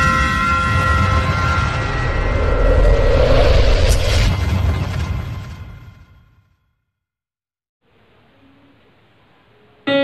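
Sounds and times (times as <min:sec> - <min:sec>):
whoosh: 0:01.0 - 0:06.5.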